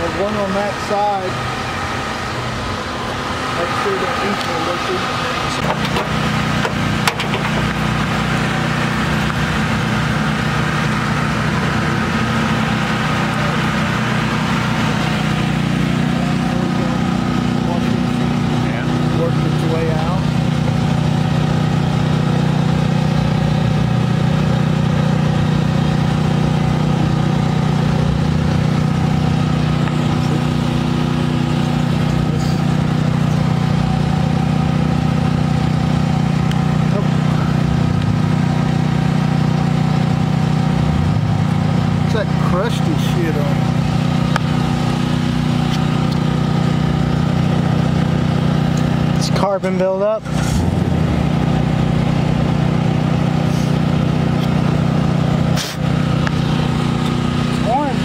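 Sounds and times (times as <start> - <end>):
engine idling: 0.0 - 58.0.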